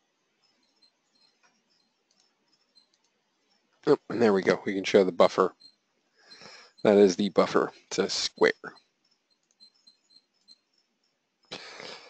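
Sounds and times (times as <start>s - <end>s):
faint ticks: 0.0s - 4.5s, 5.3s - 12.0s
person breathing: 6.2s - 6.8s, 11.5s - 12.0s.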